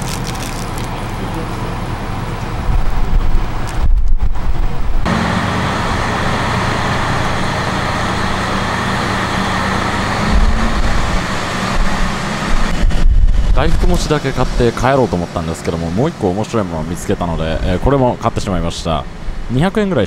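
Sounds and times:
diesel train rumble: 0.0 - 20.0.

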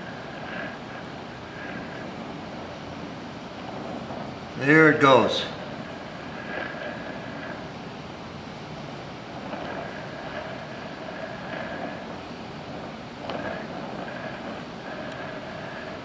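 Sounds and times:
welding torch flame hissing: 0.0 - 16.0.

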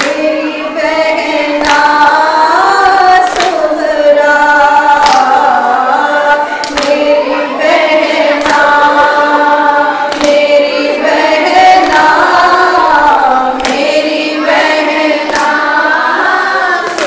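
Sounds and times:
women chanting a lament: 0.0 - 17.0.

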